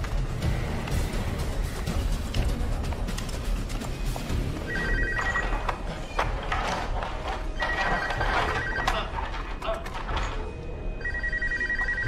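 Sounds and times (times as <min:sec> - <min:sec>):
tense film music: 0:00.0 - 0:12.0
mobile phone ringing: 0:04.6 - 0:05.8, 0:07.6 - 0:09.2, 0:10.8 - 0:12.0.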